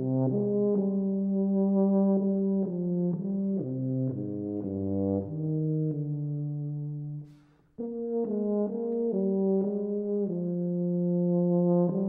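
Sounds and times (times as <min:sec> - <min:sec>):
tuba playing slow melody: 0:00.0 - 0:12.0.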